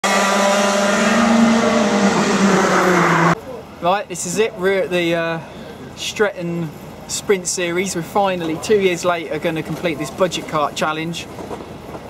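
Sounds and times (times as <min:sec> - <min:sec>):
kart engine running hard: 0:00.0 - 0:03.4.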